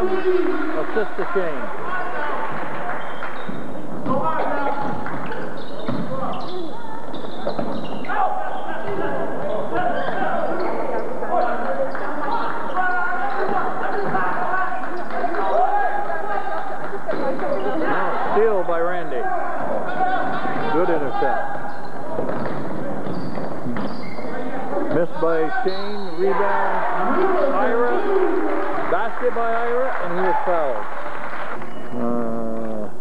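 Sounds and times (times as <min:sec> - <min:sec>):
echoing voices in a gymnasium: 0:00.0 - 0:33.0.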